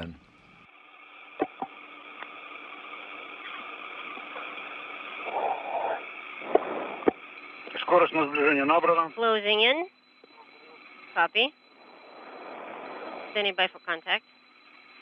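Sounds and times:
radio channel hiss: 1.0s - 14.2s
faint murmur: 5.2s - 8.8s.

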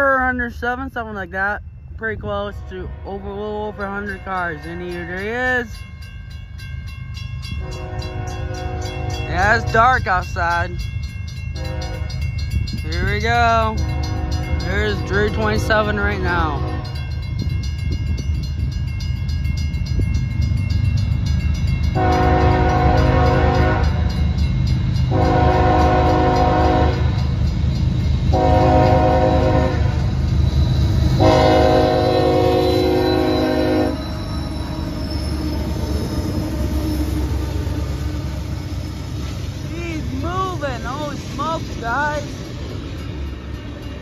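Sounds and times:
train rumble: 0.0s - 44.0s
train horn blasts: 7.6s - 9.8s, 11.6s - 12.3s, 13.8s - 17.2s, 22.0s - 24.2s, 25.1s - 27.2s, 28.3s - 30.1s, 31.2s - 34.2s.

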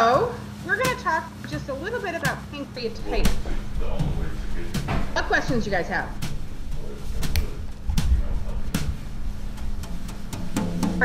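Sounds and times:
steady low hum: 0.0s - 11.0s
dull knocks and thumps: 2.3s - 11.0s.

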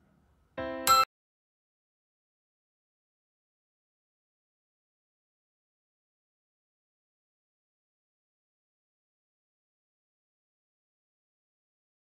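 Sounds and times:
short tone: 0.6s - 1.1s.

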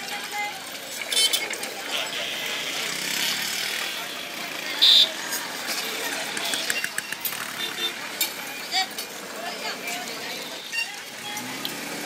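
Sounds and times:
rushing traffic-like noise: 0.0s - 12.0s.

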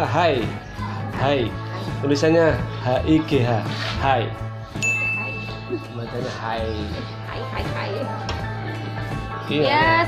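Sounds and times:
bright ding tone: 4.8s - 6.1s.

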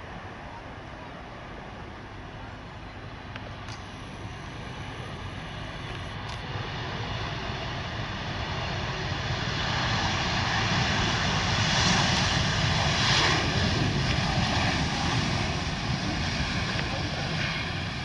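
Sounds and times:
jet engines roaring: 0.0s - 18.0s.

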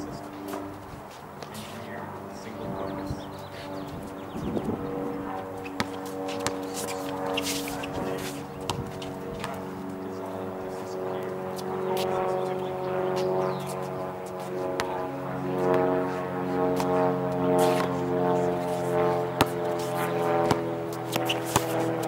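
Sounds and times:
steady hum of sustained tones: 0.0s - 22.0s
shoes squeaking and scuffing: 5.4s - 9.6s, 19.4s - 22.0s
basketball bouncing on asphalt: 5.6s - 7.1s, 8.6s - 9.7s, 14.8s - 15.0s, 19.4s - 21.9s.

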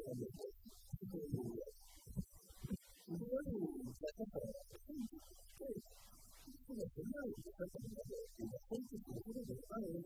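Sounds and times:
man talking: 0.0s - 1.7s, 3.1s - 5.8s, 6.5s - 10.0s.

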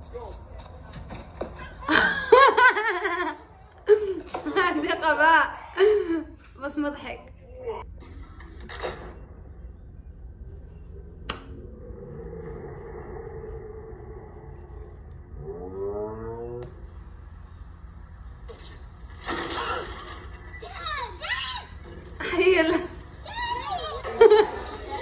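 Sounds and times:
woman laughing: 1.8s - 6.4s
voice rising in pitch: 11.6s - 16.7s.

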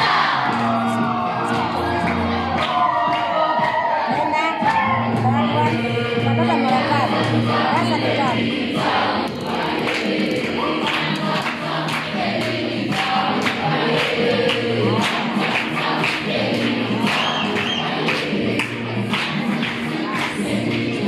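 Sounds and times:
group singing in chorus: 0.0s - 21.0s.

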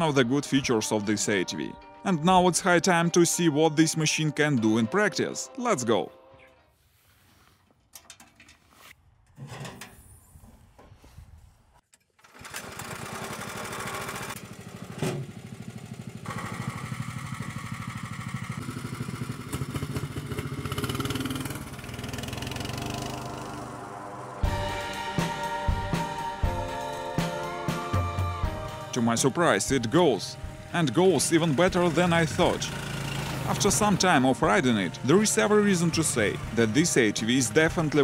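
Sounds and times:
tracked vehicle engine running: 12.4s - 24.8s, 29.6s - 38.0s.

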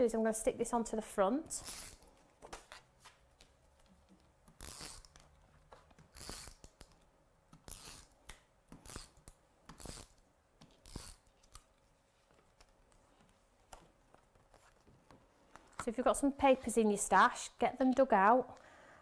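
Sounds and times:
tape runner strokes on paper: 4.5s - 7.0s, 7.6s - 15.6s.

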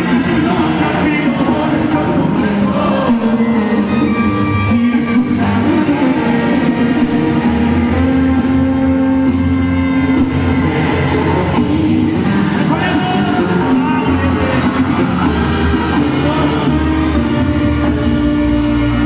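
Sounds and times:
congas: 0.0s - 19.0s
drum kit: 0.0s - 19.0s
guitar: 0.0s - 19.0s.

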